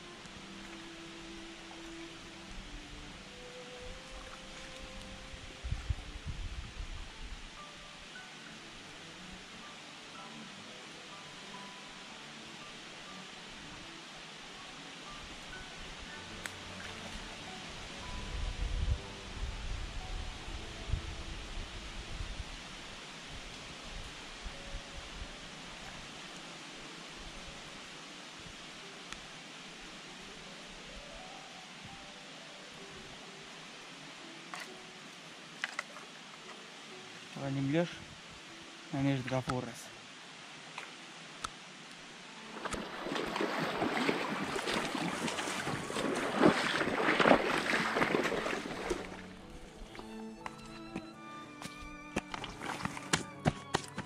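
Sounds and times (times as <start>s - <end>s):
creek water rushing: 0.0s - 54.0s
soft background music: 0.0s - 54.0s.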